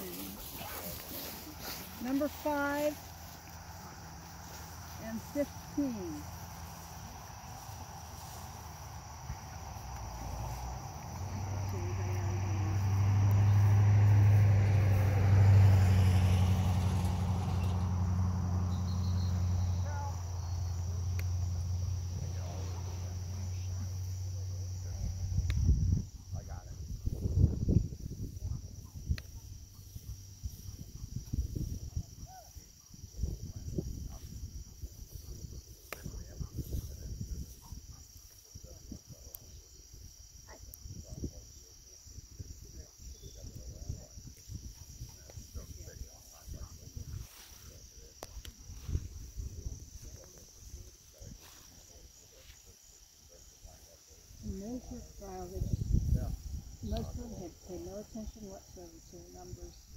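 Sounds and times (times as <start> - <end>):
insects chirring: 0.0 - 59.9
wind gusts on microphone: 21.9 - 52.4, 53.6 - 59.9.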